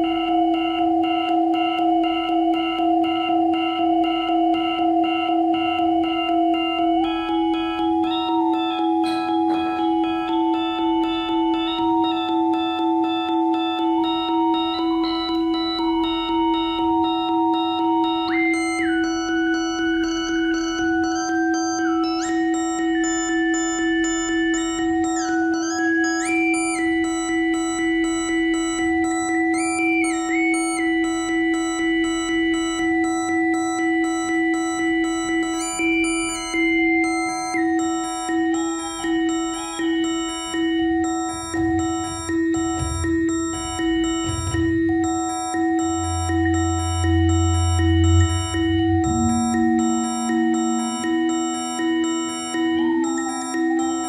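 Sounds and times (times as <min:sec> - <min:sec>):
eight-bit synthesizer music: 0:00.0 - 0:54.0.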